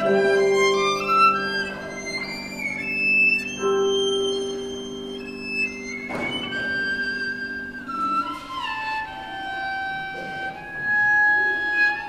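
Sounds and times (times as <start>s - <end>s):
violin playing classical music: 0.0s - 12.0s.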